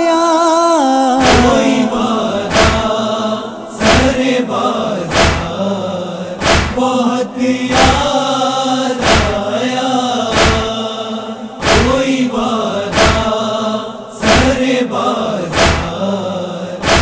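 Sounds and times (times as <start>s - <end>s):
man chanting a lament: 0.0s - 17.0s
chest-beating thumps: 1.2s - 5.7s, 6.4s - 6.8s.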